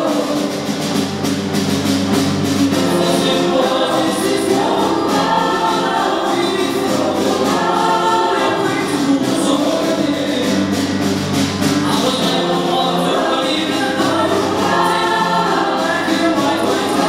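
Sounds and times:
choir sustained harmonies: 0.0s - 17.0s
young man singing: 2.8s - 11.0s, 11.8s - 17.0s.

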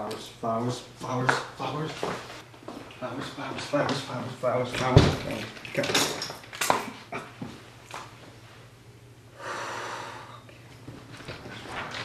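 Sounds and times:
man exhaling heavily: 9.4s - 10.5s.

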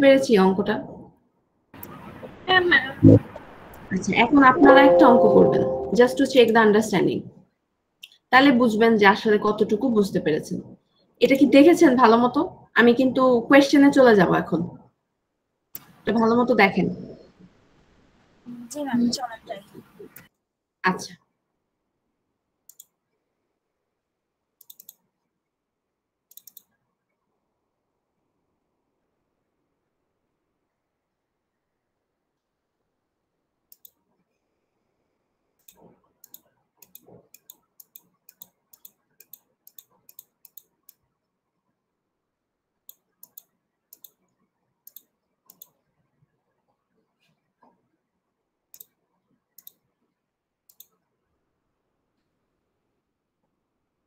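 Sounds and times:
sharp clicks in pairs: 24.6s - 25.0s, 26.3s - 26.7s, 35.6s - 41.0s, 42.9s - 44.2s.

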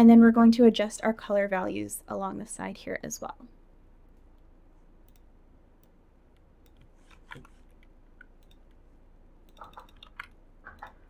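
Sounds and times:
low steady hum: 0.0s - 11.0s
computer mouse clicks: 5.0s - 8.8s, 9.4s - 11.0s.

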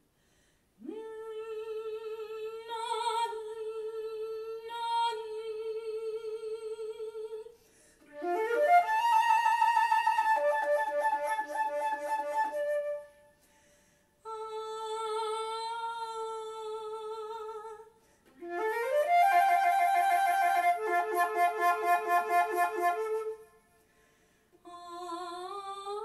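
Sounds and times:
solo flute: 8.1s - 13.4s, 18.3s - 23.7s.

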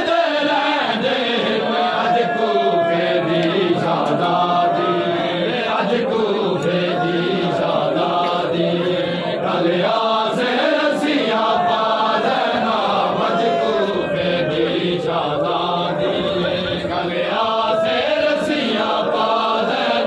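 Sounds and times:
men chanting a lament in unison: 0.0s - 20.0s.

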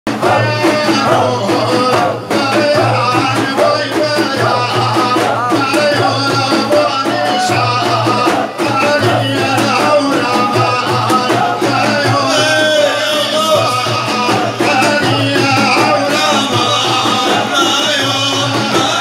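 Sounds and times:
repeating drum rhythm: 0.1s - 19.0s
voices chanting: 0.1s - 19.0s.

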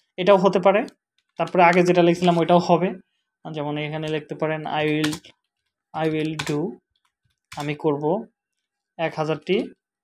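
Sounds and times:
man speaking: 0.2s - 5.3s, 5.9s - 6.8s, 7.6s - 8.4s, 9.0s - 9.8s
keyboard keys clicking: 4.0s - 5.4s, 6.0s - 6.7s.

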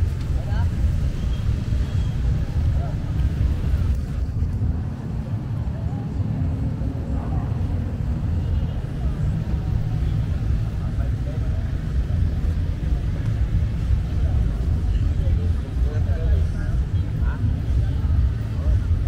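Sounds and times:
faint distant voices: 0.0s - 19.0s
low city rumble: 0.0s - 19.0s.

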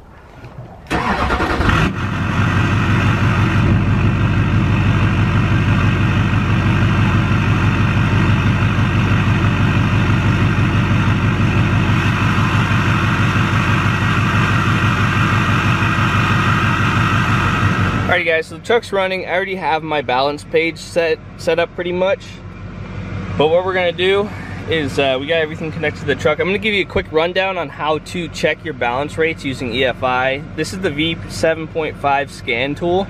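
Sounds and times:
engine cranking: 0.9s - 3.8s
diesel engine idling: 0.9s - 33.0s.

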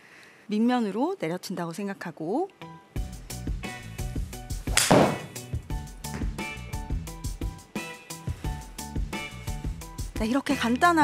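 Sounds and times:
background music with beat: 3.0s - 10.3s
golf club striking ball: 4.7s - 5.5s.

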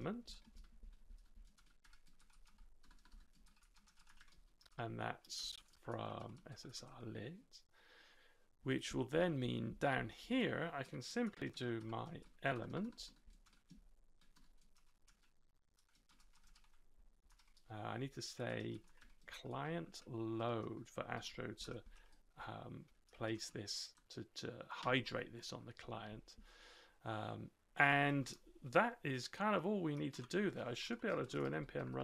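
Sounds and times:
faint keyboard typing: 0.0s - 7.0s, 10.9s - 25.9s, 29.9s - 32.0s
typing on computer keyboard: 0.4s - 4.8s, 11.4s - 17.6s, 18.6s - 19.2s.

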